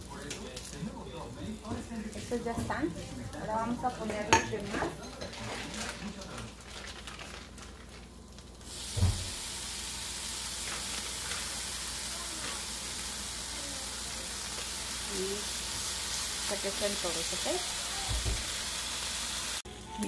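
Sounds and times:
bacon sizzling on a griddle: 0.0s - 19.6s.

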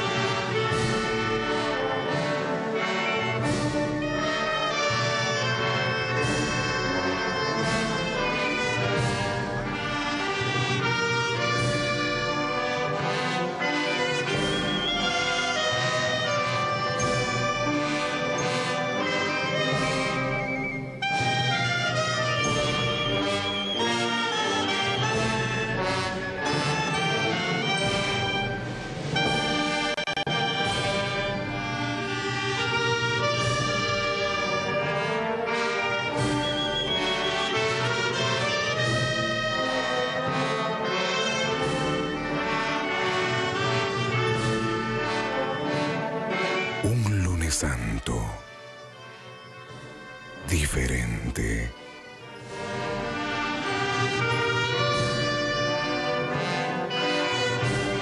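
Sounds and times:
brass orchestral music: 0.0s - 20.1s.

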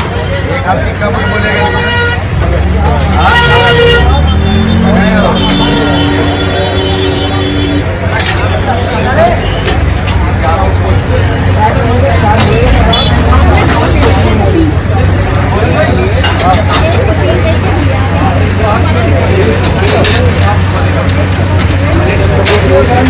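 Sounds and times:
crowd chatter: 0.0s - 23.0s
vehicle horns honking: 1.0s - 9.8s, 12.7s - 13.4s.

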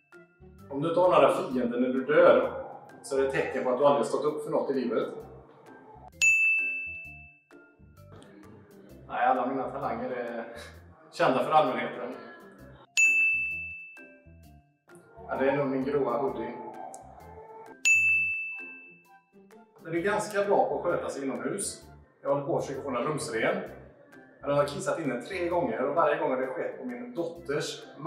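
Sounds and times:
bright bell-like ding: 6.2s - 7.4s, 13.0s - 14.2s, 17.8s - 19.0s.

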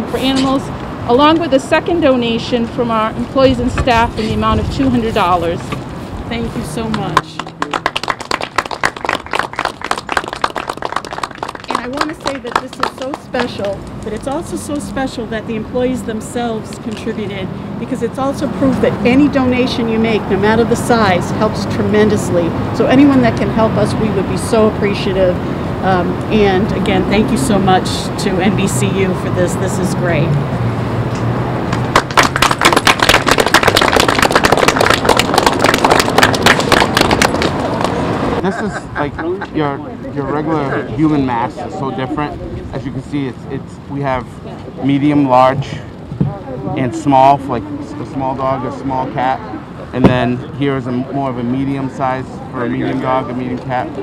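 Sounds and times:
people applauding: 6.9s - 14.3s, 31.7s - 39.3s.

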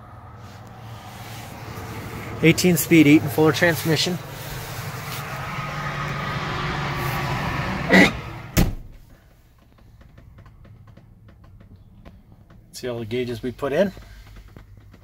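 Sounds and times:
truck door shutting: 7.0s - 9.3s.

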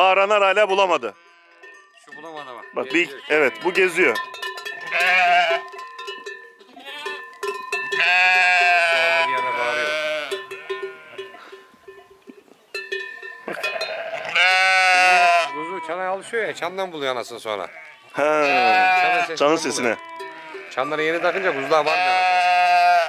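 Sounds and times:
sheep neck bells ringing: 0.0s - 15.8s, 16.6s - 23.0s
sheep bleating: 1.0s - 1.7s, 2.9s - 4.0s, 4.7s - 5.8s, 6.7s - 7.3s, 7.9s - 11.6s, 13.4s - 16.7s, 17.5s - 23.0s.

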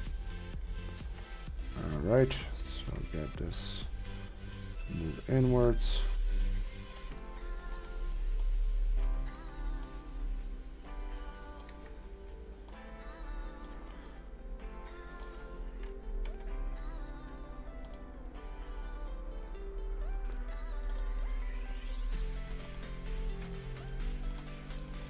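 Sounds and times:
background music with sustained chords: 0.0s - 25.0s
steady low hum: 0.0s - 25.0s.

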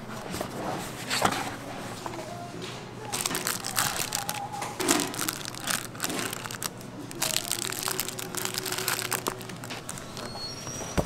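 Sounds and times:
plastic wrappers crinkling: 3.1s - 10.5s.

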